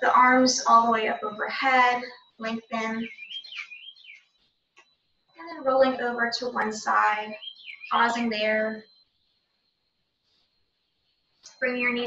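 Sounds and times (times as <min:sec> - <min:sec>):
bird warbling call: 0:02.8 - 0:04.2, 0:07.2 - 0:08.6.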